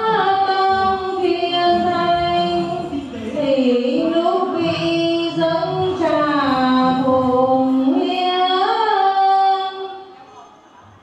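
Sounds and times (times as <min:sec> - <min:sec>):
woman singing long notes: 0:00.0 - 0:10.0.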